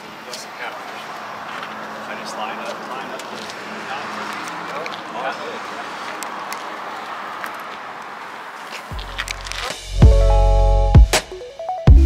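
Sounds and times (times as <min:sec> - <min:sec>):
music with deep bass: 0:08.9 - 0:12.0.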